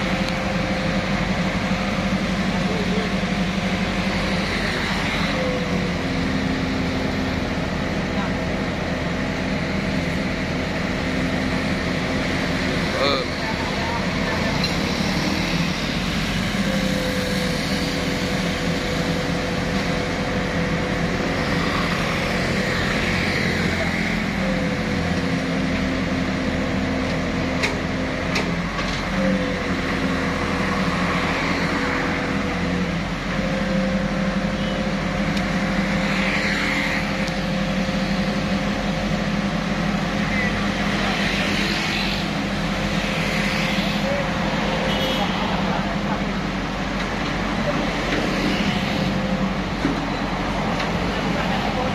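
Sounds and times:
hydraulic crane whine: 0.0s - 51.9s
low engine drone: 0.0s - 51.9s.

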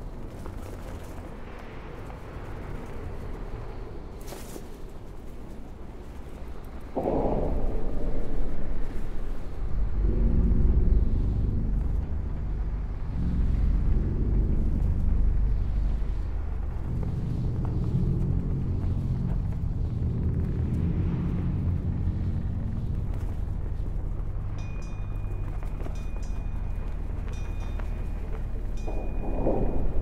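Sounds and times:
dark ambient drone: 0.0s - 30.0s.

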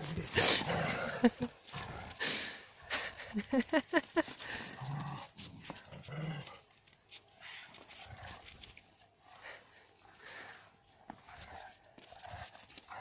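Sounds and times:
dogs growling: 0.0s - 3.4s, 4.4s - 6.8s
person laughing: 0.4s - 1.6s, 2.9s - 4.7s.

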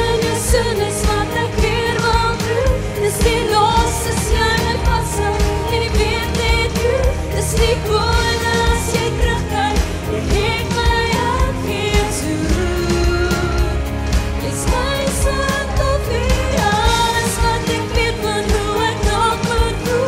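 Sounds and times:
backing music with drum beat: 0.0s - 20.0s
woman singing pop song: 0.0s - 20.0s.

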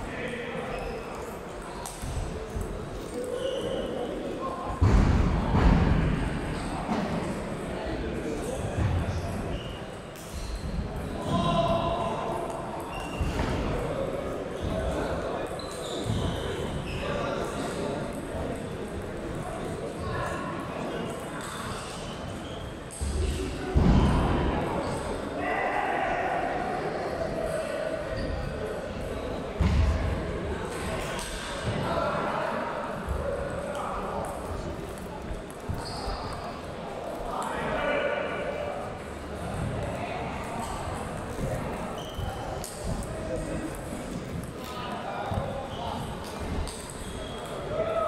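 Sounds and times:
voices in a large hall: 0.0s - 48.0s.

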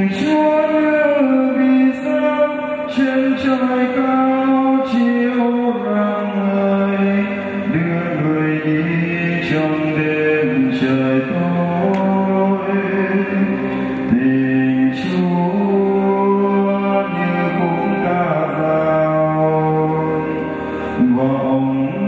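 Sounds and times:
electronic keyboard chords: 0.0s - 22.0s.

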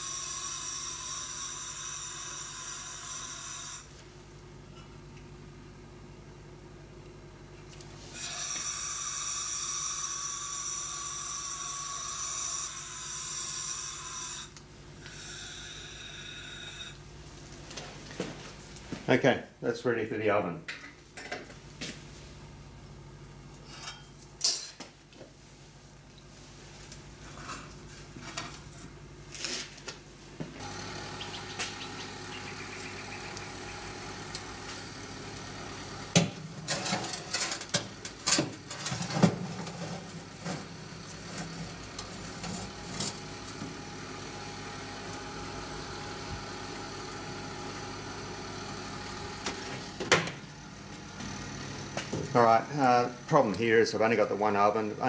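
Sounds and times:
oven hum: 20.7s - 55.0s.

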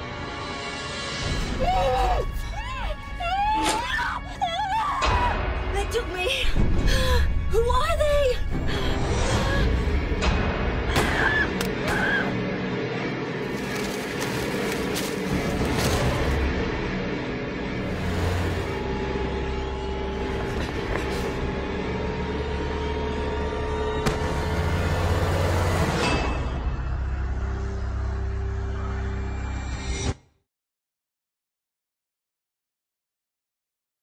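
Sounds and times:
tense horror music: 0.0s - 30.2s
woman wailing and whimpering: 1.6s - 9.9s
car engine droning: 14.4s - 29.0s.

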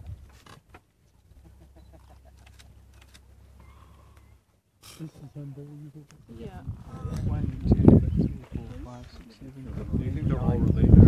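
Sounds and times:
low steady rumble: 0.0s - 11.0s
faint bird chirps: 3.6s - 4.5s.

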